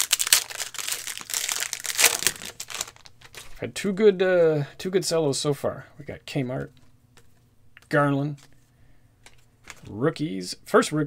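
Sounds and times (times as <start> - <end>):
cellophane wrapper crinkling: 0.0 - 3.6.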